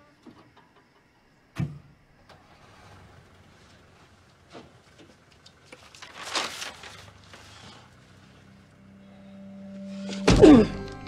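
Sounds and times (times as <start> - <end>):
low steady hum: 3.2 - 11.0.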